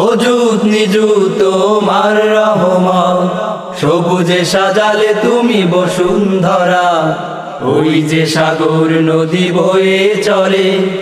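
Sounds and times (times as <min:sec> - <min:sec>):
voices singing chant-like song: 0:00.0 - 0:11.0.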